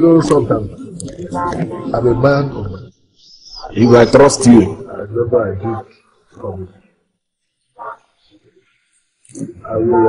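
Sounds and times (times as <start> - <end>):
faint murmurs: 0.0 - 2.9, 3.6 - 6.8.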